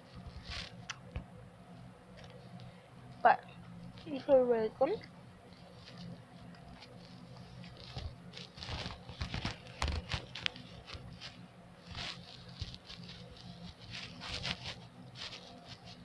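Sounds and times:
wrapper crinkling and rustling: 0.2 - 0.8, 5.6 - 16.0.

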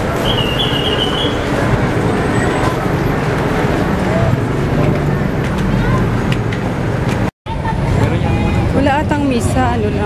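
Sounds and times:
busy road traffic: 0.0 - 10.0
crowd: 0.0 - 10.0.

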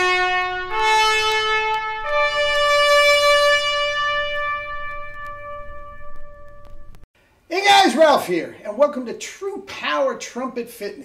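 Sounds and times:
trumpet sustained note: 0.0 - 7.0.

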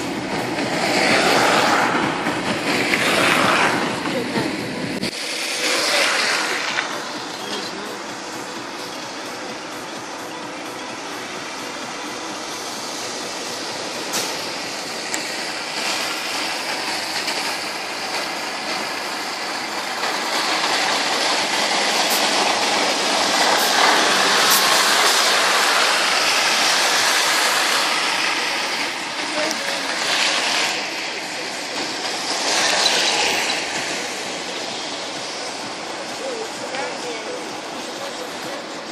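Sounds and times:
indistinct voices: 0.0 - 17.4, 18.0 - 38.9
vehicles passing on wet road: 0.0 - 38.9.

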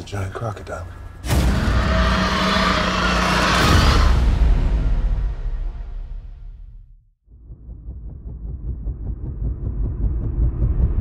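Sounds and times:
deep rumble: 1.0 - 11.0
crocodile roaring: 1.4 - 4.4.

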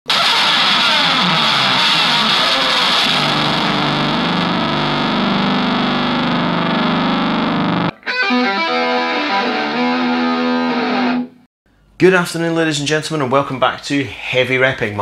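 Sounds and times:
distorted electric guitar noise: 0.1 - 11.4.

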